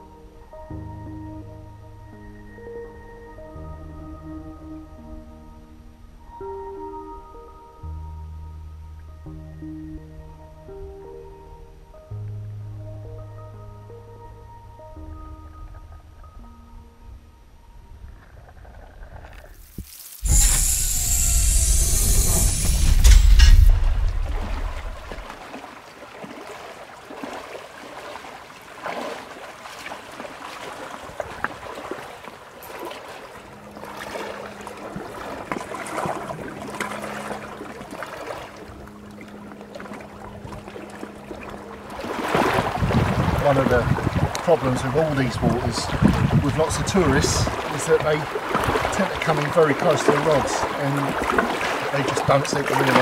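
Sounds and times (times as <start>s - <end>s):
soft background music: 0.0s - 19.2s, 29.6s - 53.0s
water splashing and lapping: 18.2s - 53.0s
person wading on pebbles: 18.6s - 44.9s
loud rushing water: 19.6s - 53.0s.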